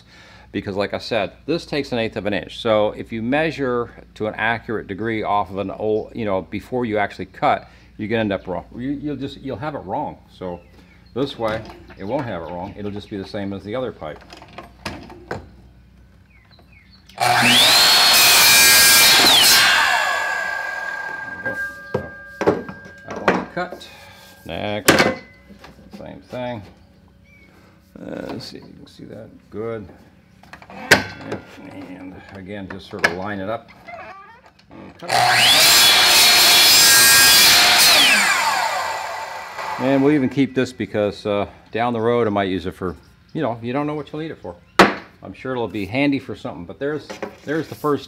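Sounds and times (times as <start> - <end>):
saw blade cutting plastic: 17.2 - 22.2, 35.0 - 40.1
miter saw motor whine: 17.2 - 23.2, 35.1 - 40.3
faint bird chirps: 26.4 - 27.8.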